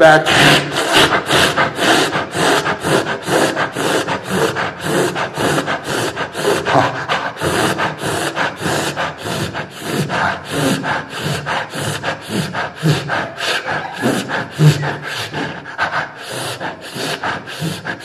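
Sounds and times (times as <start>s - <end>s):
man panting into microphone: 0.2s - 18.0s.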